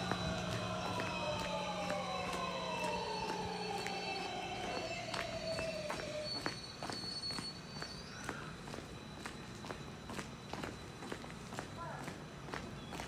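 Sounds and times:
electric train rumbling: 0.0 - 13.0.

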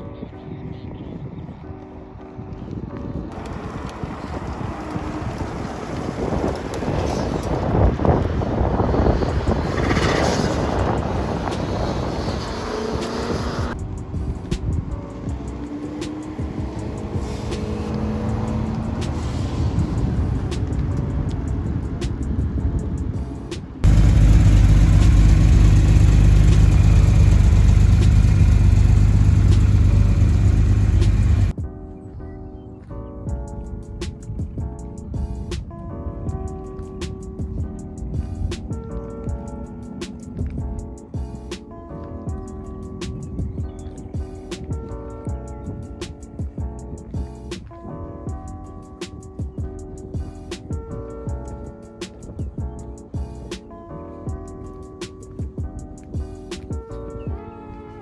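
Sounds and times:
car engines accelerating: 3.3 - 14.1, 14.8 - 31.5
loud low rumble: 23.8 - 31.5.

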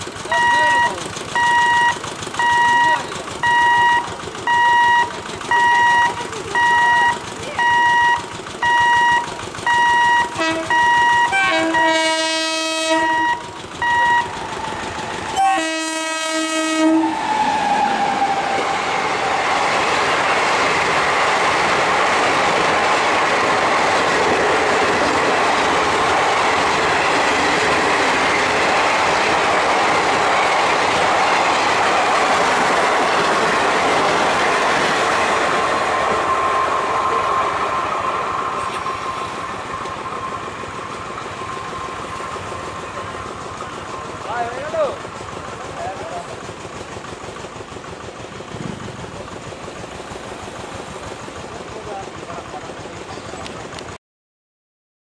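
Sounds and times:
train wheels rushing on rail: 0.0 - 54.0.

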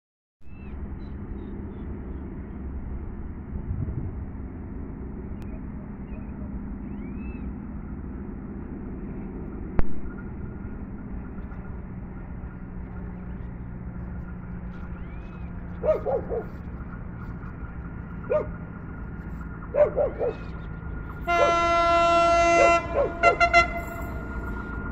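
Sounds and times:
outdoor background rumble: 0.4 - 24.9
faint bird chirps: 5.4 - 7.5
dog barking: 15.8 - 16.6, 18.3 - 18.6, 19.7 - 20.5, 22.6 - 23.4.

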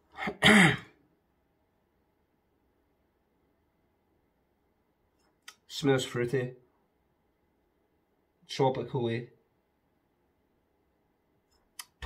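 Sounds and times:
man clearing his throat: 0.2 - 1.0.

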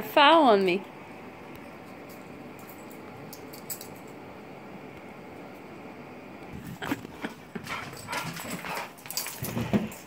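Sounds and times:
metal collar tag jingling: 2.0 - 4.2
dogs play-wrestling: 6.6 - 10.0.

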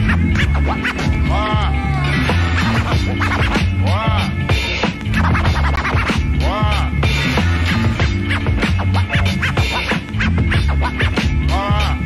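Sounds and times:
hip hop beat: 0.0 - 12.0
record scratching on turntable: 0.0 - 12.0.

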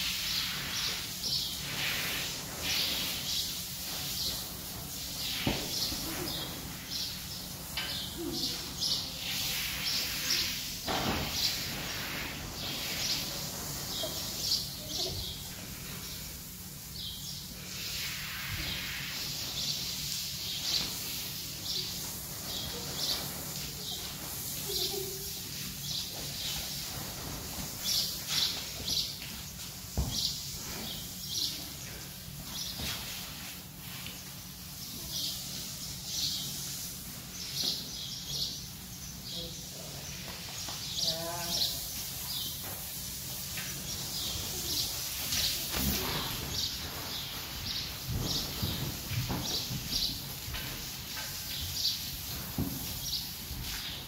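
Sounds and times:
small birds chirping: 0.2 - 54.0.

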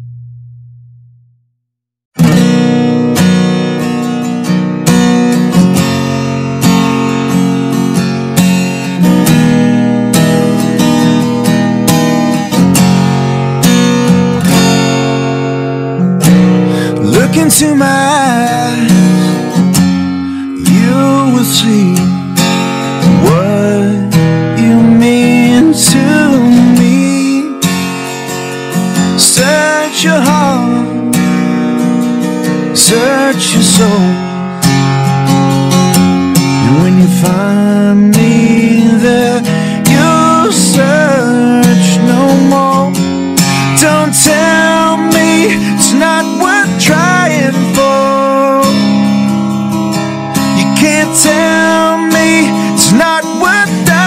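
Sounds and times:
acoustic guitar strumming: 2.2 - 54.0
person singing: 16.6 - 22.3, 23.1 - 27.6, 29.2 - 31.0, 32.8 - 34.3, 36.6 - 49.2, 50.4 - 54.0.

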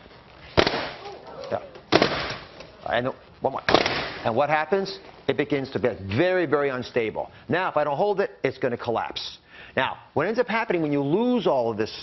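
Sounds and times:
balloons popping: 0.0 - 2.8, 3.6 - 4.3.

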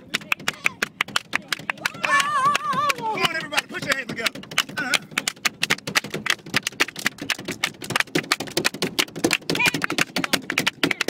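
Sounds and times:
rapid claps and slaps: 0.0 - 11.0.

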